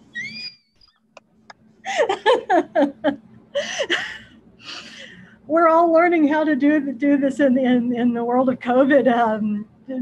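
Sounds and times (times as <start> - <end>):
woman laughing: 1.8 - 4.3.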